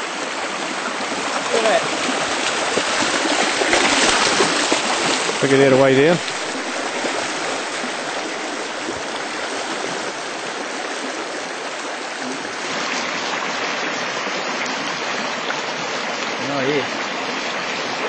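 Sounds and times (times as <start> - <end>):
river water rushing: 0.0 - 18.0.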